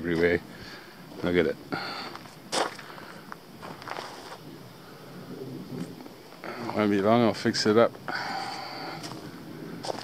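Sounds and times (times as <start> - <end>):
person breathing: 0.5 - 1.1, 1.7 - 3.4, 8.1 - 10.0.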